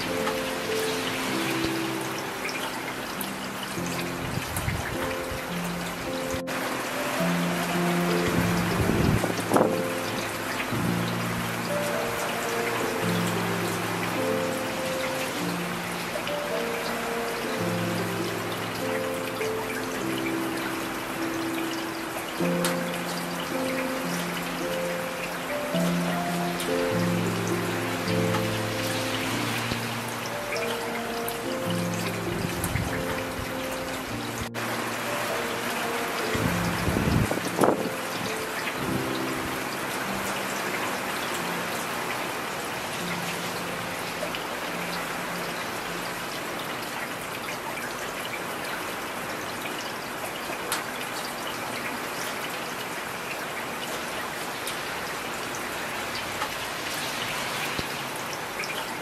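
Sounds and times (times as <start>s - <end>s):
soft slow ambient music: 0.0s - 59.0s
steady rain hissing: 0.0s - 59.0s.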